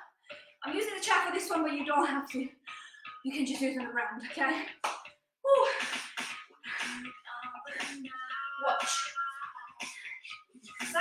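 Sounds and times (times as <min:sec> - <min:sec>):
woman talking: 0:00.6 - 0:02.6, 0:03.2 - 0:04.7, 0:07.2 - 0:09.9, 0:10.7 - 0:11.0.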